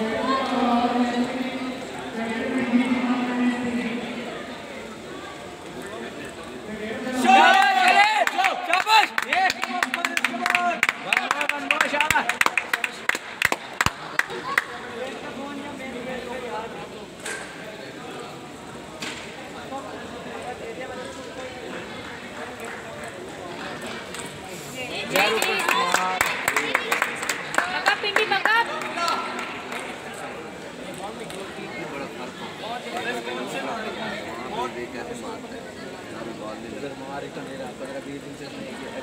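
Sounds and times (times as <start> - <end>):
murmur of voices: 0.0 - 39.0.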